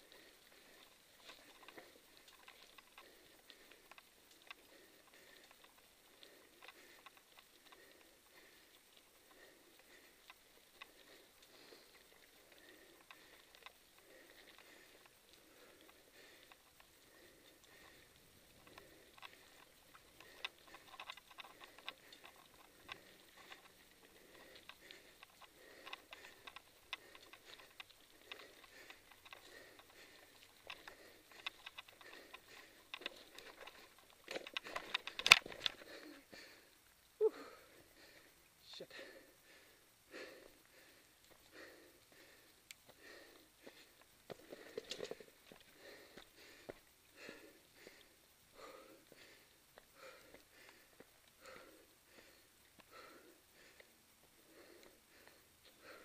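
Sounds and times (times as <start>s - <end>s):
bike clicks and rattles: 0.0s - 36.7s, 39.4s - 56.0s
bike tyres crackling over leaves: 0.0s - 38.6s.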